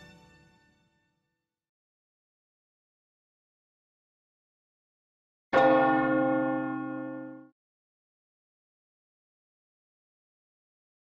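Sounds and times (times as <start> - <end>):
deep bell-like tone: 5.6 - 7.5.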